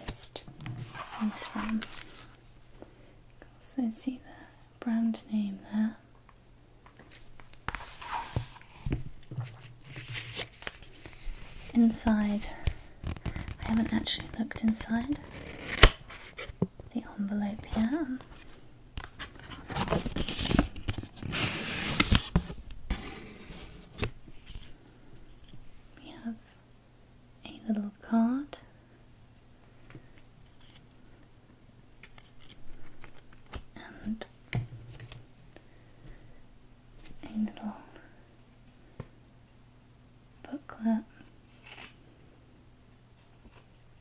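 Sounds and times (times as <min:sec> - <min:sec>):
fingers handling paper card: 0:00.8 - 0:02.4, 0:09.4 - 0:16.5, 0:32.0 - 0:34.2.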